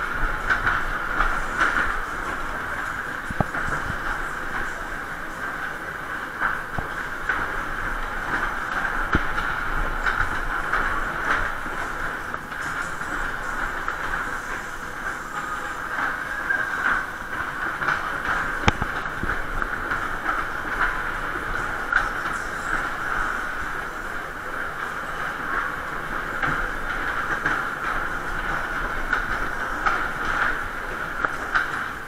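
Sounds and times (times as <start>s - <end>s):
ride car rumbling clatter on track: 0.0s - 32.0s.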